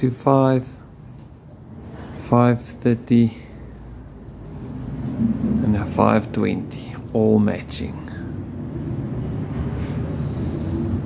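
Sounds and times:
vehicle engine rumble: 0:00.8 - 0:11.0.

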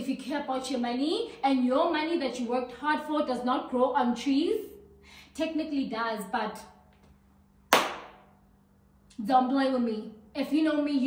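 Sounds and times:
sharp hand clap: 0:07.7 - 0:08.3.

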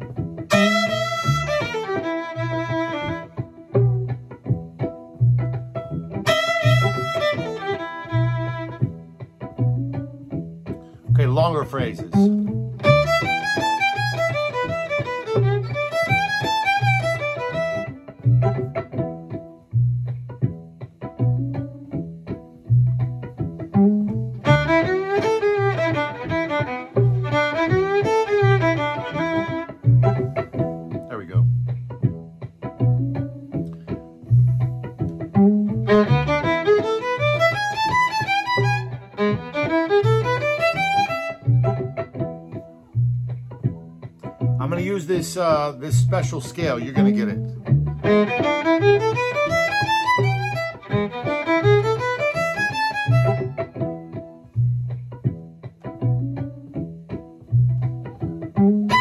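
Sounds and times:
backing groove with bass pulse: 0:00.0 - 0:59.0
fiddle playing bluesy phrases: 0:00.0 - 0:59.0.

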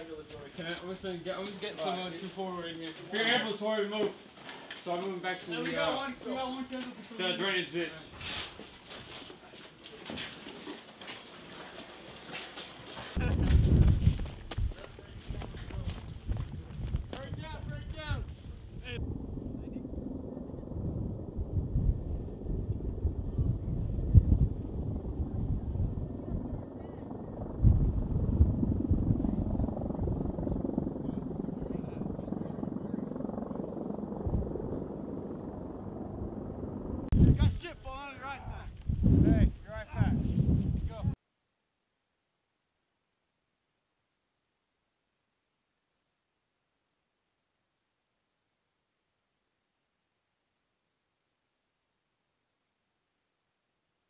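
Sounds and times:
helicopter rotor drone: 0:15.0 - 0:37.6.

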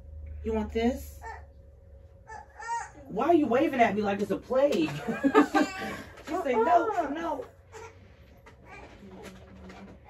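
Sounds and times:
faint low humming voice: 0:00.1 - 0:10.0.

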